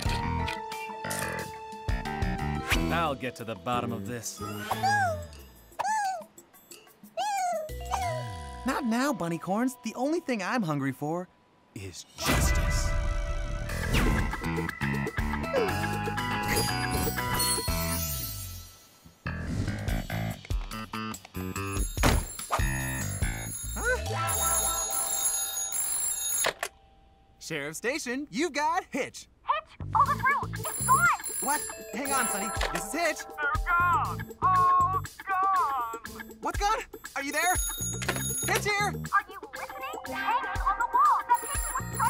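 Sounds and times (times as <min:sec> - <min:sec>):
upbeat music jingle: 0:08.3 - 0:11.2, 0:30.5 - 0:42.0
telephone ringing: 0:22.3 - 0:27.0, 0:30.6 - 0:33.4, 0:37.3 - 0:38.9, 0:41.1 - 0:42.0.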